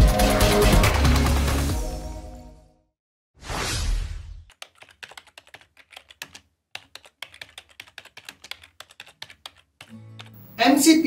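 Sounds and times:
typing on laptop keyboard: 4.5 - 10.4.

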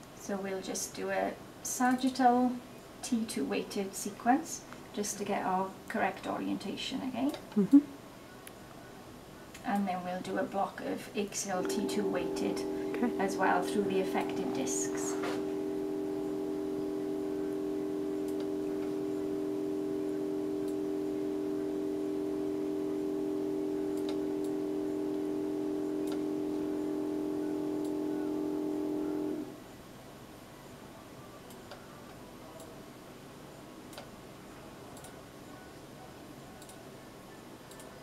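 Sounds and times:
mri scanner hum: 10.2 - 29.6.

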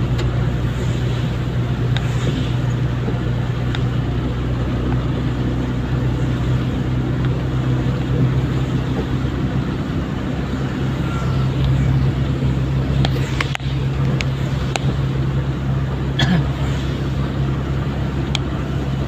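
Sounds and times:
vehicle engine drone: 0.0 - 19.0
wet road hiss: 0.4 - 4.1, 10.1 - 19.0.

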